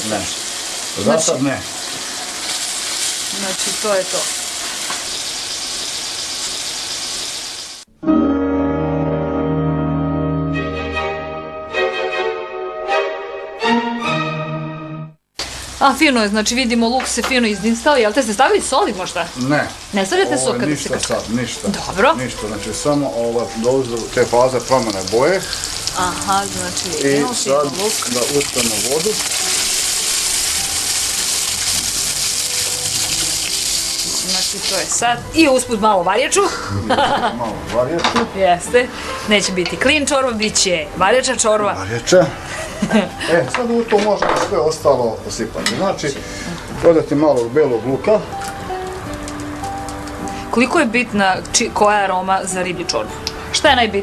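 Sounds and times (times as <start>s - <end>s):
onions sizzling in a pot: 0.0s - 7.9s, 15.4s - 54.0s
water pouring into metal pot: 22.2s - 35.0s.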